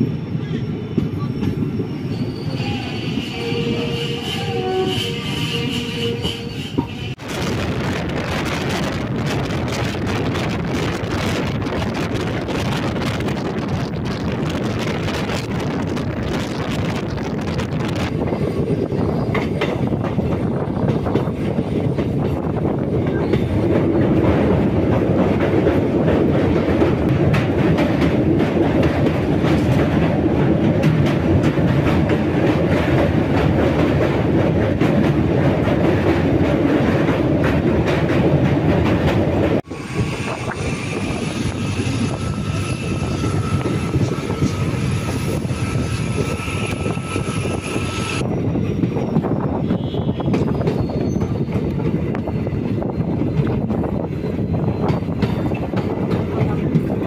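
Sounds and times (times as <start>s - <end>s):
high wheel squeal: 0.0s - 6.9s, 39.7s - 48.3s, 49.0s - 55.6s
wind: 0.0s - 57.0s
train wheels clacking on track: 2.8s - 57.0s.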